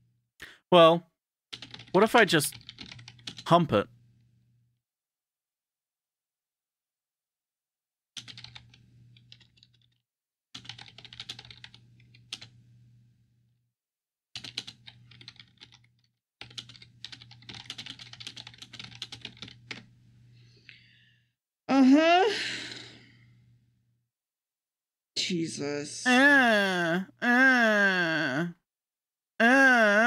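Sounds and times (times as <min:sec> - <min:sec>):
typing on computer keyboard: 0:01.5 - 0:03.5, 0:08.2 - 0:10.0, 0:10.6 - 0:12.5, 0:14.4 - 0:19.9.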